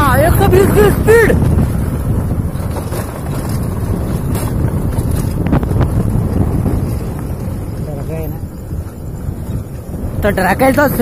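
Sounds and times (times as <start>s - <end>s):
motorcycle engine running: 0.0s - 11.0s
wind rushing over microphone: 0.0s - 11.0s.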